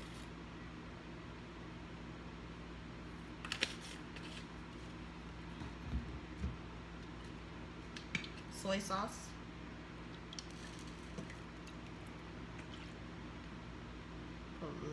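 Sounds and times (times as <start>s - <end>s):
steady low hum: 0.0s - 14.9s.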